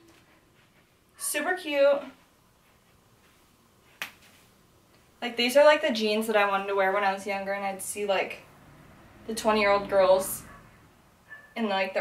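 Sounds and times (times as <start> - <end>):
hand snap: 4.0 - 4.2.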